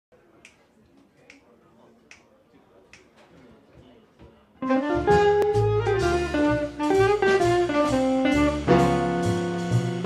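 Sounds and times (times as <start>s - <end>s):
finger snaps: 1.2s - 1.5s, 2.1s - 2.3s, 2.9s - 3.1s.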